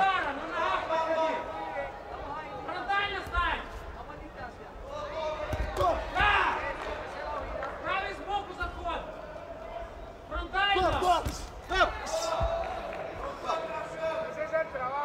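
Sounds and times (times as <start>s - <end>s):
men shouting: 10.5s - 14.0s.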